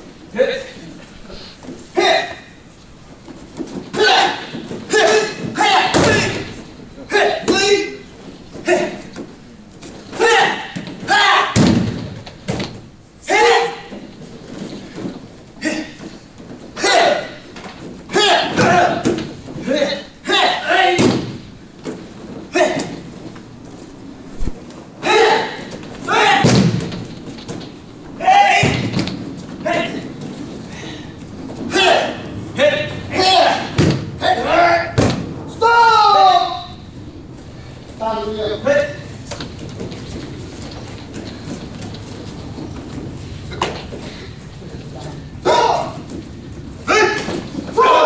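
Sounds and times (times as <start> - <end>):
person yelling: 4.0 - 6.5, 10.2 - 11.6, 13.2 - 13.9, 16.8 - 17.4, 18.1 - 19.0, 19.7 - 21.1, 25.0 - 26.6, 28.2 - 28.9, 31.7 - 36.8, 45.4 - 46.0, 46.9 - 48.0
people shouting: 4.0 - 8.0, 10.1 - 11.6, 13.2 - 13.9, 16.8 - 17.4, 18.1 - 21.1, 25.0 - 26.7, 28.2 - 29.0, 31.7 - 36.8, 45.4 - 46.1, 46.8 - 48.0
body thudding onto gym mats: 10.1 - 12.9, 25.6 - 27.8.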